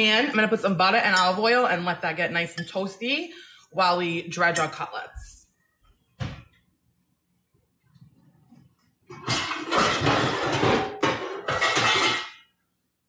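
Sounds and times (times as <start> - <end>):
pots and pans clattering: 9.1 - 12.5.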